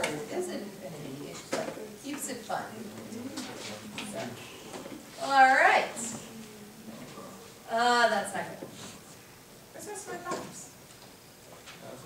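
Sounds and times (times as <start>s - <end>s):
murmuring voices: 0.0s - 7.6s
steady low hum: 0.0s - 12.0s.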